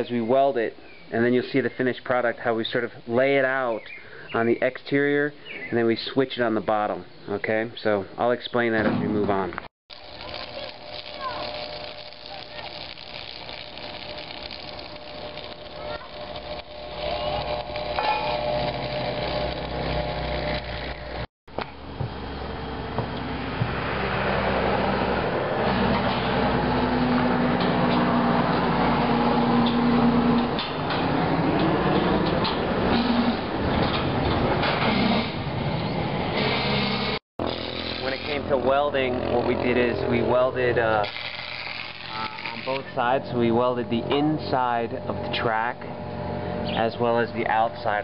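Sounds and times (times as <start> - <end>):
welding arc crackling: 9.9 - 21.7, 36.3 - 48.0
machine hum: 9.9 - 48.0.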